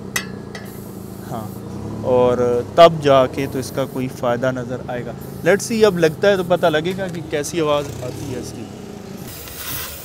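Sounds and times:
sharp metallic tap: 0:00.1 - 0:00.8.

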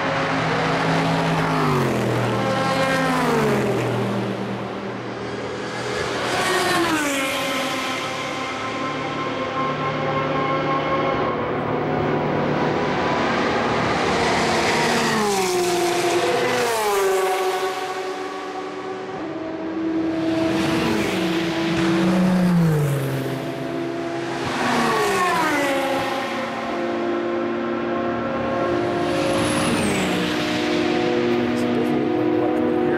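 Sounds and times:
race cars passing at full speed: 0:00.0 - 0:32.9.

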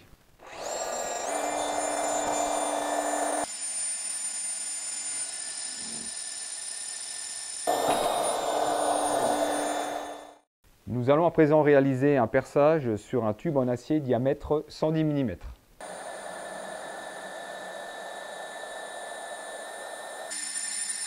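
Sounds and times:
core drill motor whining: 0:00.4 - 0:10.4, 0:15.8 - 0:21.0
core cutter boring through steel: 0:00.4 - 0:10.5, 0:15.8 - 0:21.0.

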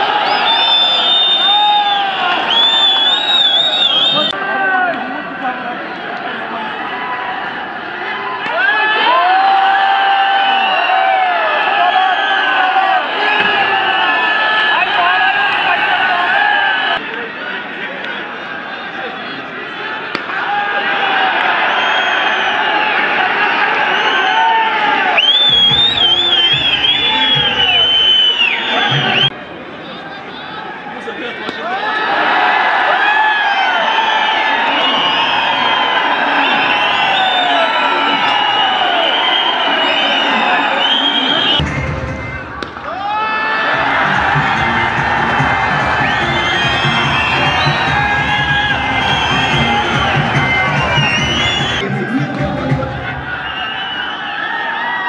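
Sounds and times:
crowd cheering and shouting: 0:00.0 - 0:55.0
background music with beat: 0:41.6 - 0:42.8, 0:43.8 - 0:53.5.

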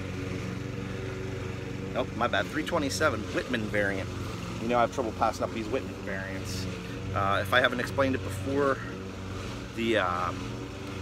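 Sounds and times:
small engine humming: 0:00.0 - 0:11.0.

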